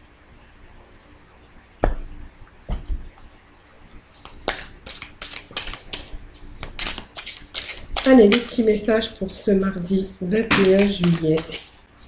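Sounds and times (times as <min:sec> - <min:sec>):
cards shuffling clicks: 0:04.2 - 0:08.8, 0:10.4 - 0:11.8.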